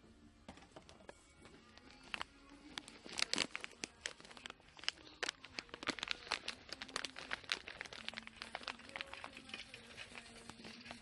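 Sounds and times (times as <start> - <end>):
plastic packaging crinkling: 1.6 - 11.0.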